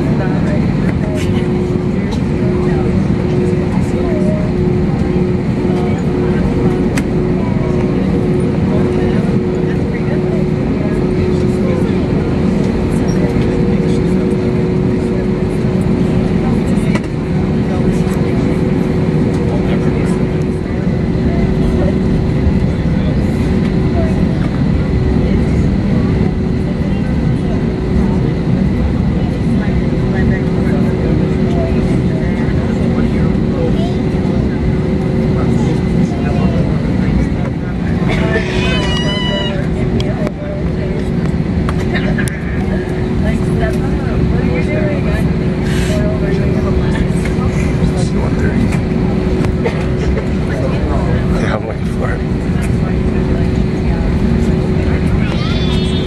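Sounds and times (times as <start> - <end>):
airliner cabin rumble: 0.0 - 56.0
jet engines humming: 0.0 - 56.0.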